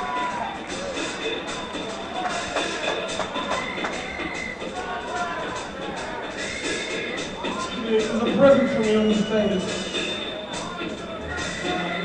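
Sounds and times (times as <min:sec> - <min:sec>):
high wavering vocal whoops: 0:11.1 - 0:12.0.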